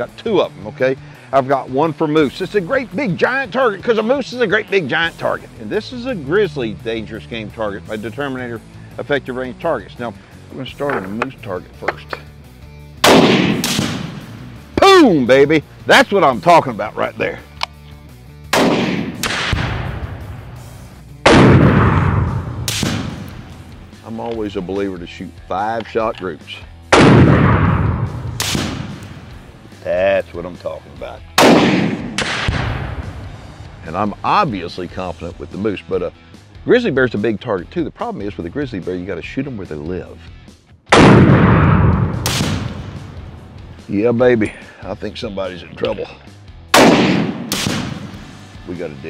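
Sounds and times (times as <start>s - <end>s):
rifle shots with rolling echo: 13.0s - 14.6s, 18.5s - 20.6s, 21.2s - 23.8s, 26.9s - 29.4s, 31.4s - 33.2s, 40.9s - 43.6s, 46.8s - 48.5s.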